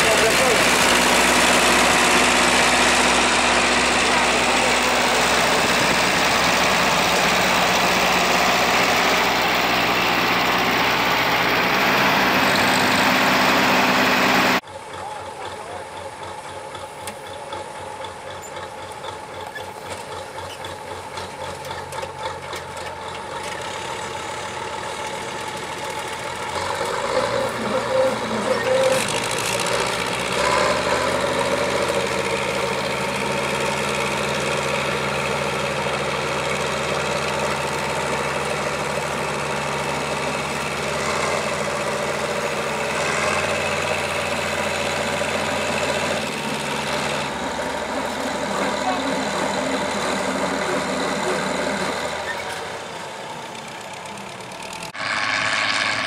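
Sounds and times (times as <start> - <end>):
diesel engines idling and revving: 0.0 - 56.0.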